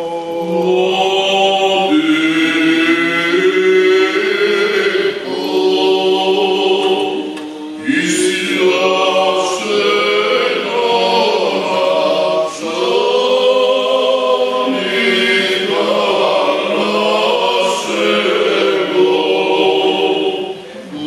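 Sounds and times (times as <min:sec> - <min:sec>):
unaccompanied choir chanting: 0:00.0 - 0:21.0.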